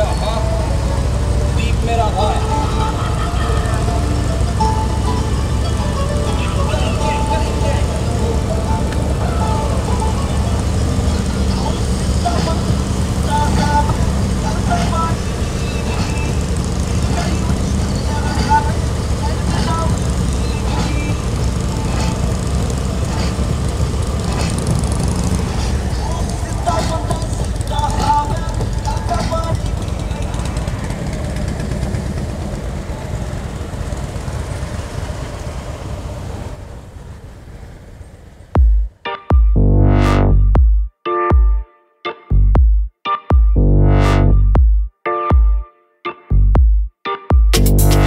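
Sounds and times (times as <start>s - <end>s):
faint music with voice: 0.0s - 23.5s
motorcycle engine rumble: 0.0s - 40.7s.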